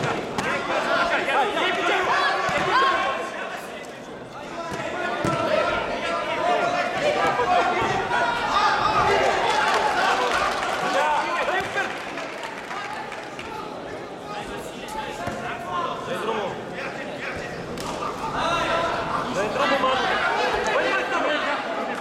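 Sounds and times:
voices calling out in echoing hall: 0.0s - 22.0s.

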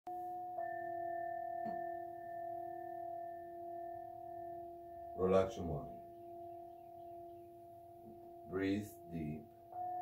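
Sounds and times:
metal singing bowls ringing: 0.1s - 10.0s.

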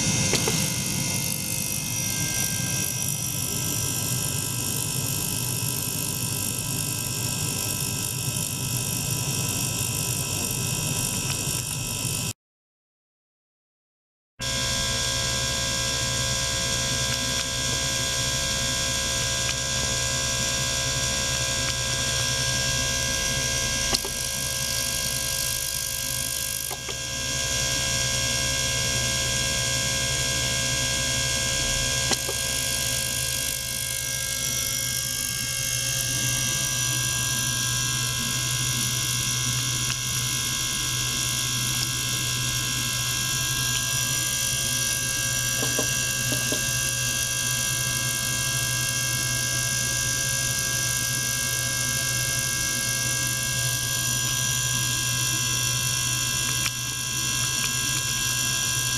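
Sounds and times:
ultrasonic cleaner humming: 0.0s - 4.4s, 14.4s - 58.9s.

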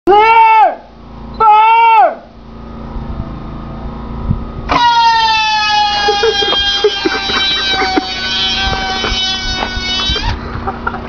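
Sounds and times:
missile motor whine: 2.3s - 11.0s.

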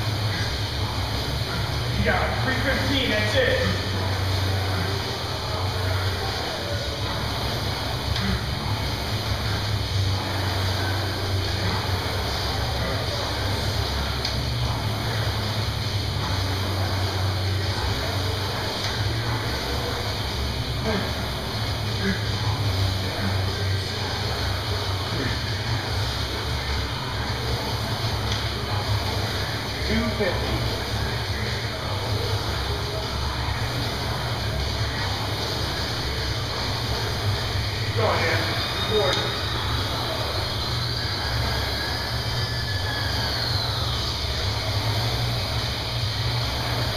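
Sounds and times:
rowing machine flywheel whirring: 0.0s - 46.9s.

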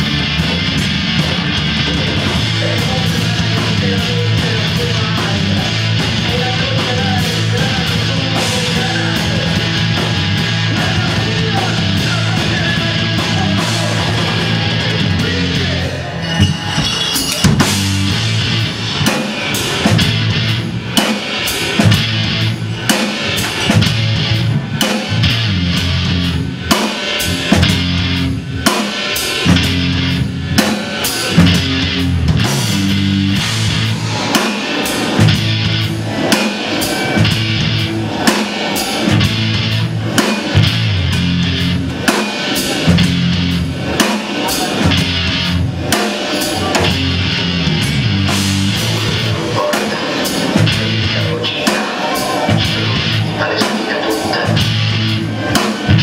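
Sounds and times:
drum kit: 0.0s - 56.0s
electric guitar riffing: 0.0s - 56.0s.

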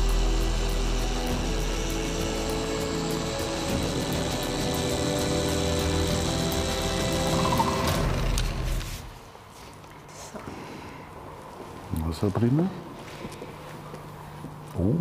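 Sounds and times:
background music: 0.0s - 9.2s
electric car polisher running: 0.1s - 8.9s.

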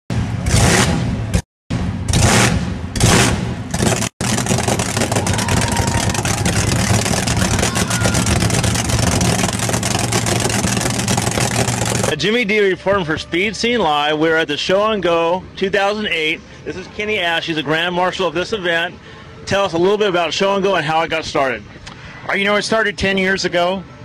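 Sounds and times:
loud car engine revving and rumbling: 0.1s - 12.2s.

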